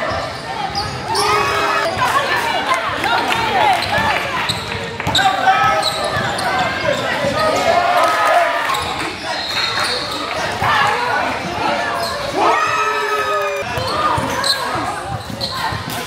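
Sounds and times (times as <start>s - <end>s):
voices calling out in a gym: 0.0s - 16.0s
basketball bouncing on court: 2.9s - 7.4s.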